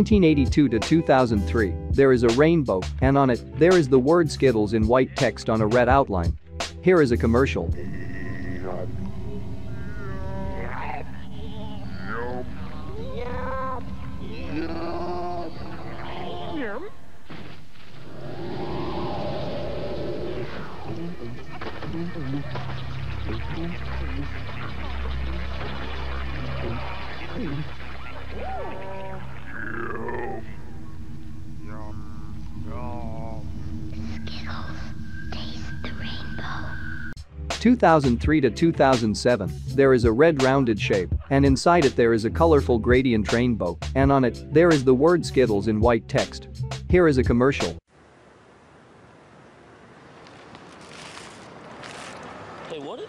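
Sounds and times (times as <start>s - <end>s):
steady low hum: 7.7s - 15.9s, 29.2s - 37.2s
warbling whale-like creature calls: 7.8s - 17.0s, 18.0s - 33.7s
falling whooshing effects: 17.6s - 21.6s
person whispering: 20.8s - 22.5s, 32.7s - 36.7s
low music bed: 30.2s - 35.8s.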